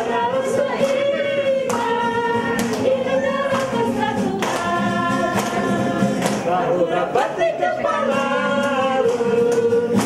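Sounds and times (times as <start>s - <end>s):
acoustic guitar: 0.0s - 10.0s
group singing in unison: 0.0s - 10.0s.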